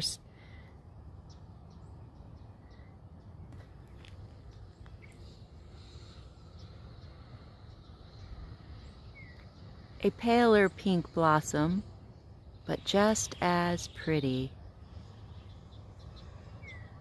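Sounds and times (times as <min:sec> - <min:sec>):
steady low rumble: 0:00.0 - 0:17.0
bird chirps: 0:04.4 - 0:09.9, 0:12.4 - 0:17.0.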